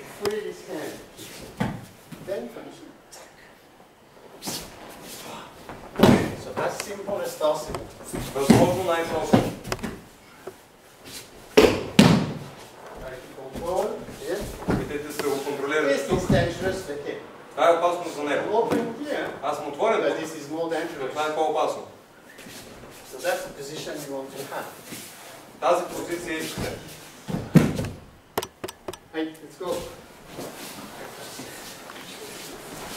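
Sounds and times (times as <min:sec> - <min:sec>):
body hitting a mat: 0:05.8 - 0:06.6, 0:11.5 - 0:12.6
short sharp taps: 0:27.8 - 0:29.1
person speaking: 0:28.4 - 0:29.4.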